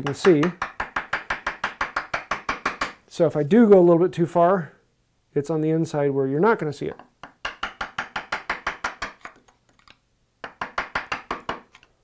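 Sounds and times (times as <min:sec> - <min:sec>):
mallet tapping chisel: 0:00.0 - 0:03.0, 0:06.9 - 0:09.4, 0:10.4 - 0:11.9.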